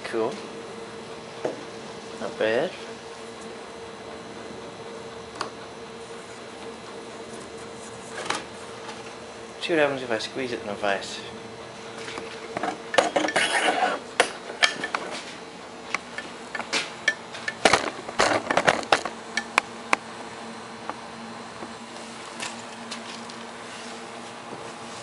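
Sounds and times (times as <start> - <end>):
metal tools clanking and rattling: 12.6 - 15.2.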